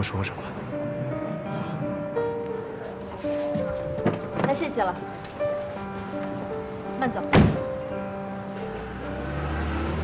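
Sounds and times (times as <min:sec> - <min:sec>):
background music: 0:00.0 - 0:10.0
car door slamming: 0:07.3 - 0:07.7
car rumbling away: 0:08.5 - 0:10.0.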